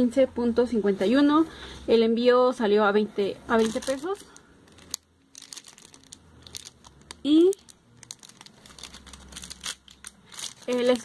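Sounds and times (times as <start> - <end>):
plastic packaging crinkling: 3.5 - 11.0.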